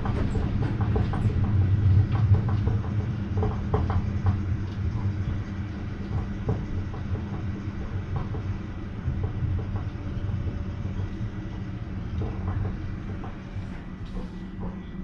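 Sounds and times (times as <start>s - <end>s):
tram rumbling in motion: 0.0s - 15.0s.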